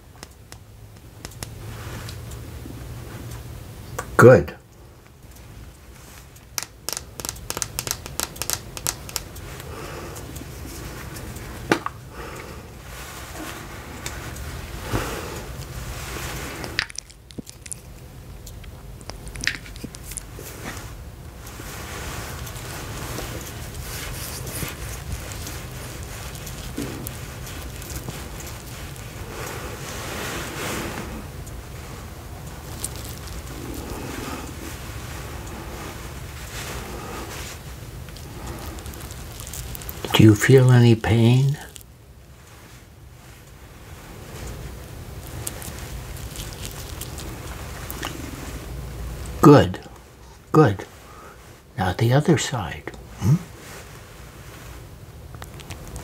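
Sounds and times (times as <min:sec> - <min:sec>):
hands rubbing and rustling: 0:00.0 - 0:03.3, 0:05.3 - 0:56.0.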